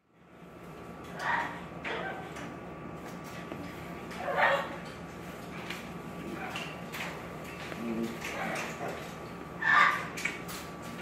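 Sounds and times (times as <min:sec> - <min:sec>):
parrot vocalizing: 0:01.0 - 0:02.4, 0:08.3 - 0:10.2.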